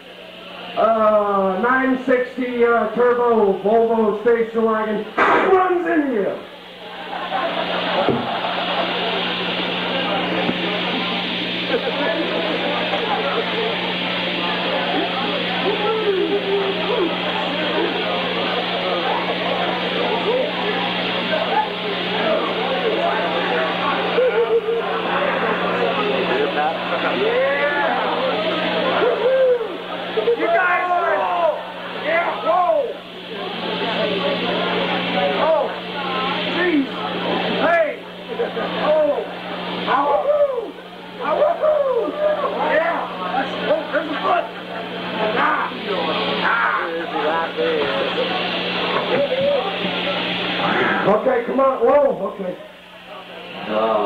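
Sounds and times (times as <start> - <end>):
amplifier hum: 0.0 - 54.0
crowd talking and shouting: 0.0 - 54.0
people yelling: 7.2 - 36.9, 37.5 - 49.8.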